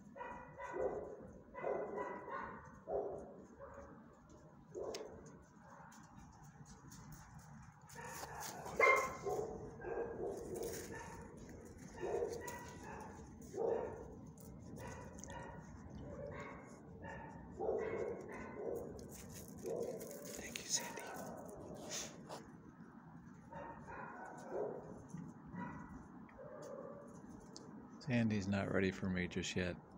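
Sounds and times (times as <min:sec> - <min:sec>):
dog barking: 0:00.1 - 0:04.0, 0:04.7 - 0:05.9, 0:07.9 - 0:22.1, 0:23.4 - 0:27.2.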